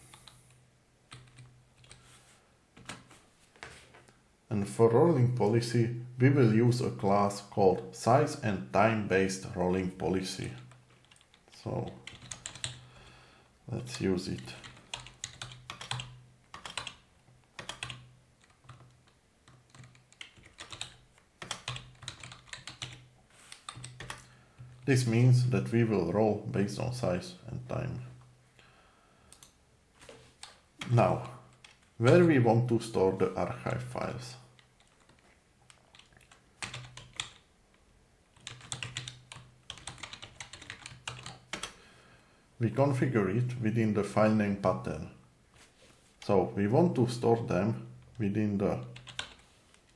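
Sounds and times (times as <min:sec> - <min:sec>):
computer keyboard typing: 0:00.1 - 0:02.0, 0:10.5 - 0:12.8, 0:14.3 - 0:24.8, 0:30.4 - 0:32.0, 0:34.6 - 0:37.5, 0:38.3 - 0:41.8, 0:48.9 - 0:49.9.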